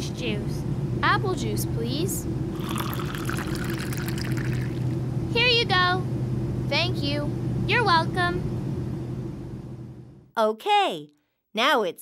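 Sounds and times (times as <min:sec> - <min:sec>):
steady low hum: 0:00.0 - 0:10.3
juice pouring into a cup: 0:02.5 - 0:05.0.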